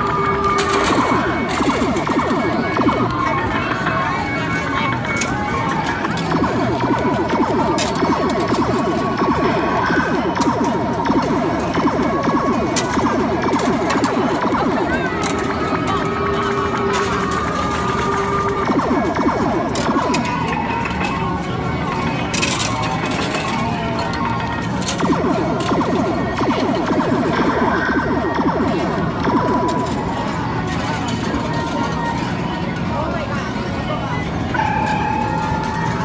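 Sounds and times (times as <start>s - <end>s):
electronic game music: 0.0s - 32.7s, 34.4s - 36.0s
arcade machine sound effects: 0.0s - 36.0s
babble of voices: 0.0s - 36.0s.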